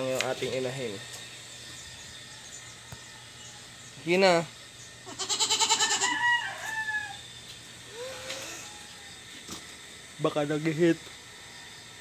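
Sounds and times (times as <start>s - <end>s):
farm animal calling: 1.8s - 7.3s, 7.9s - 9.6s.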